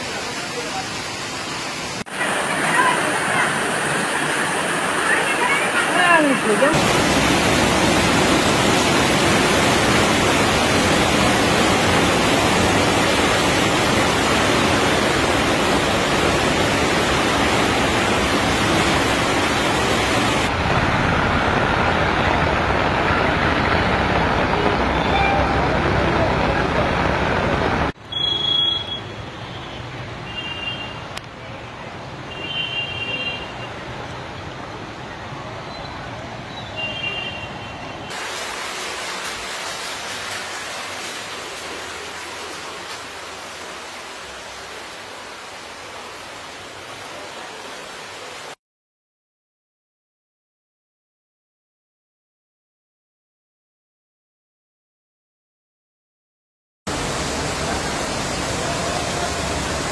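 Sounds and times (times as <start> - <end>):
water rushing: 0.0 - 48.6, 56.9 - 59.9.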